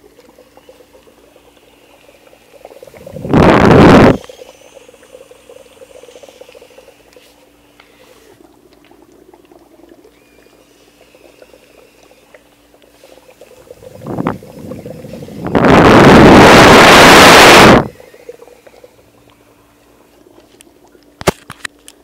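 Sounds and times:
dry ice bubbling in water: 0.0s - 22.0s
loud gas hiss: 14.4s - 18.2s.

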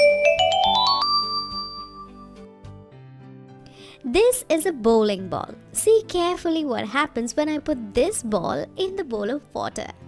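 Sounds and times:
bright chime ding: 0.0s - 2.4s
soft background music: 0.0s - 10.0s.

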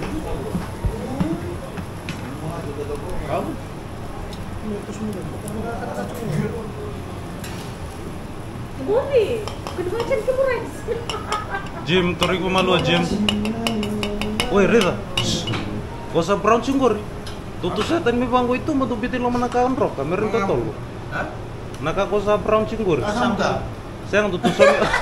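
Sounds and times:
men talking: 0.0s - 7.4s, 11.5s - 25.0s
tongs and dishes clinking: 9.4s - 10.3s, 11.0s - 15.8s.

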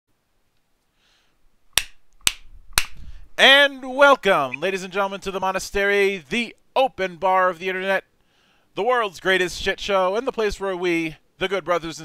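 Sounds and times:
finger snap: 1.8s - 3.1s.

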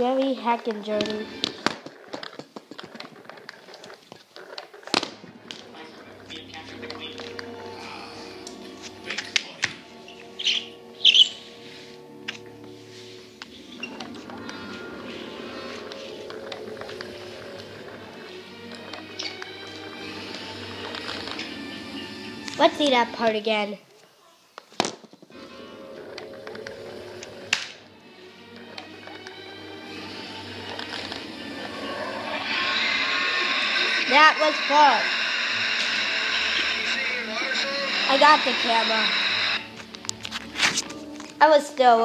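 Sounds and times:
speech: 0.0s - 1.2s, 36.8s - 39.1s, 41.4s - 42.0s
film music with held notes: 0.0s - 24.3s, 25.2s - 42.0s
sharp sound effects: 31.8s - 39.6s.

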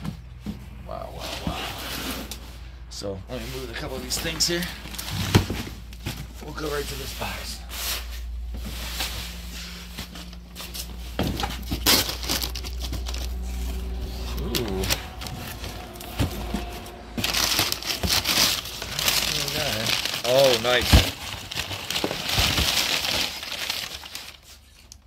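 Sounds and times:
paper crinkling and rustling: 3.6s - 25.0s.

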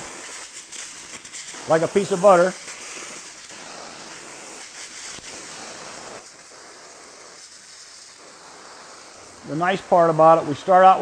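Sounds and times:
gas torch flame hissing: 0.0s - 11.0s.

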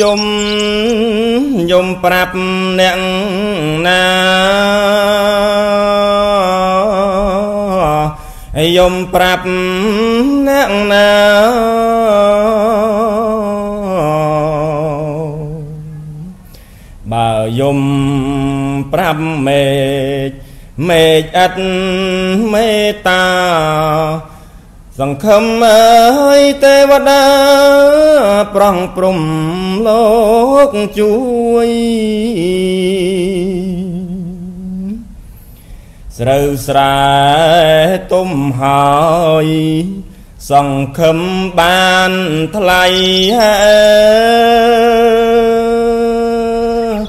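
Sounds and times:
man chanting verse: 0.0s - 16.4s, 36.1s - 47.0s.

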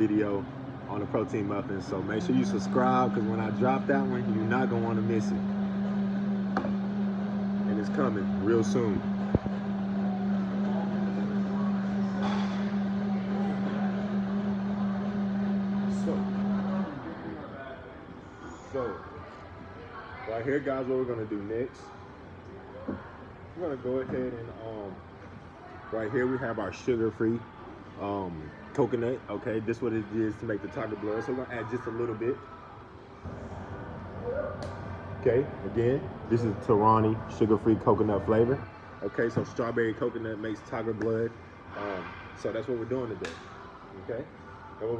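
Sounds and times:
blender humming: 0.0s - 17.5s.

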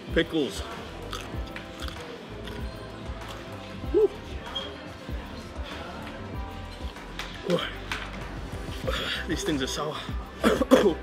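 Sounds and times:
background music: 0.0s - 11.0s
man crunching a pickle: 1.1s - 2.7s.

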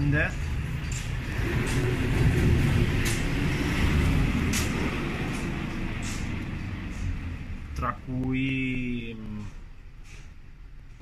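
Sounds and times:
vehicle passing rumble: 0.0s - 11.0s.

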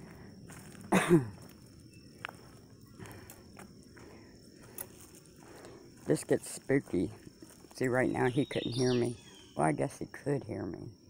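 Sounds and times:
footsteps on dirt trail: 0.0s - 9.4s
high insect drone: 0.0s - 11.0s
person coughing: 0.9s - 1.4s.

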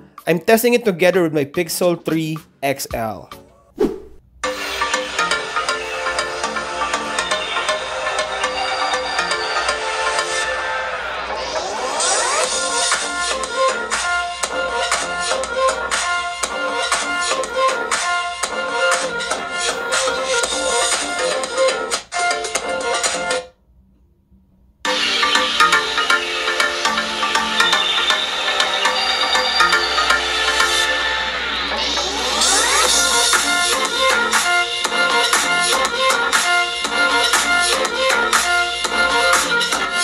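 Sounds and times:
electronic music from phone speakers: 4.4s - 23.4s, 24.9s - 40.0s.

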